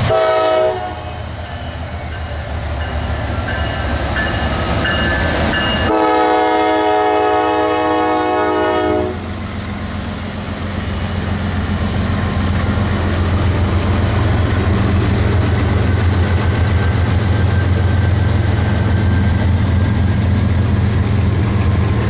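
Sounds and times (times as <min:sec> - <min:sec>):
locomotive air horn blasts: 0:00.0 - 0:01.4, 0:05.8 - 0:09.3
freight locomotives rumbling past: 0:00.0 - 0:22.0.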